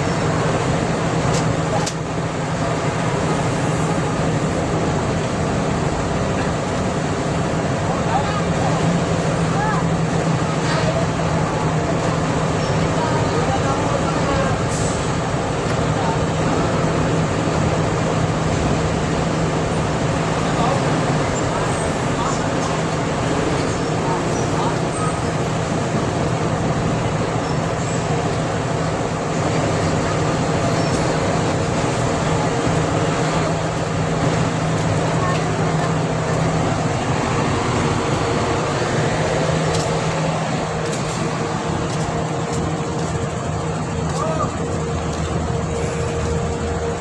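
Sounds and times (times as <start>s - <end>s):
dense street traffic: 0.0s - 47.0s.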